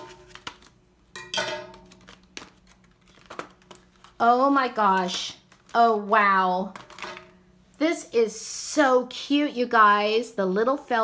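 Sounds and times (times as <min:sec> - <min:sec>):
plastic clicks and rustles: 0:01.8 - 0:04.2.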